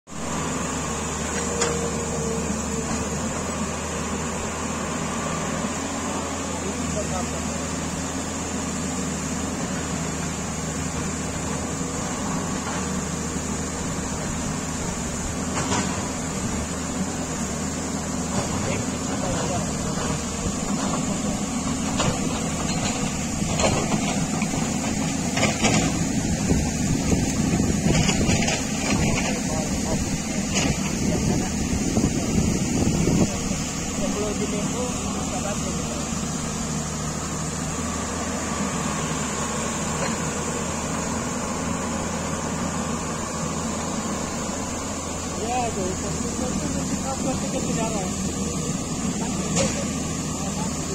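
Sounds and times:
excavator diesel engine running: 0.1 - 50.9.

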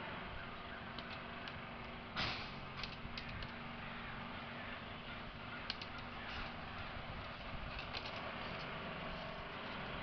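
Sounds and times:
scraping rustle: 5.9 - 10.0.

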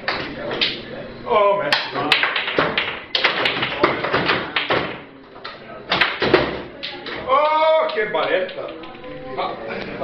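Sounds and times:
foosball ball and rods knocking: 1.8 - 5.1.

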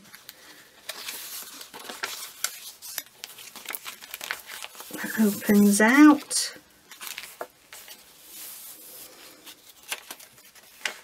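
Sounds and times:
paper pages rustling: 0.1 - 11.0.

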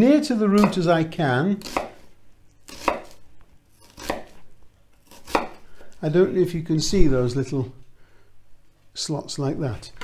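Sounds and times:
knife slicing onion: 0.5 - 4.4, 5.0 - 6.0.

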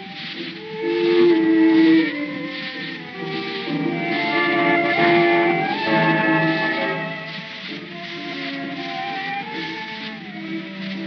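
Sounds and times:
instrumental tango: 0.0 - 11.0
record surface hiss: 0.0 - 11.0.

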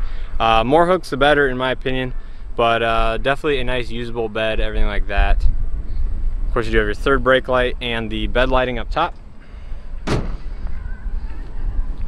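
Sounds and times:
tailgate slamming shut: 10.0 - 10.6.

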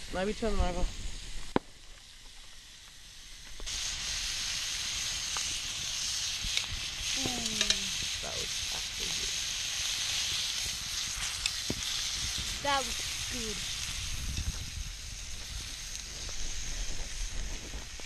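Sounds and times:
meat sizzling in a pan: 0.0 - 18.0
small pops and crackles: 0.9 - 18.0.

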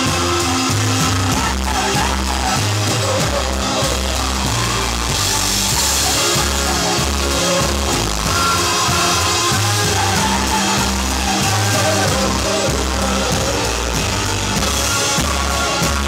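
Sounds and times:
drum kit struck hard: 0.0 - 16.0
person singing: 0.0 - 16.0
rock band playing: 0.0 - 16.0.

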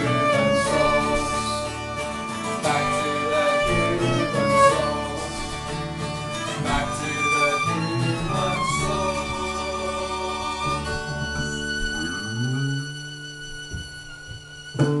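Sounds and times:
sustained violin notes: 0.0 - 15.0
violin guitar and bass band: 0.0 - 15.0.

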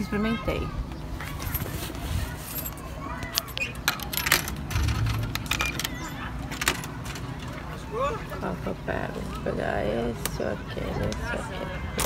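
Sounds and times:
coins clinking into vending machine: 3.4 - 7.2.

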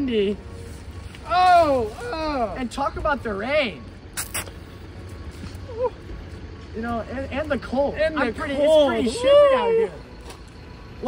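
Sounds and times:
low outdoor rumble: 0.0 - 11.0
short bursts of noise: 4.1 - 4.9.

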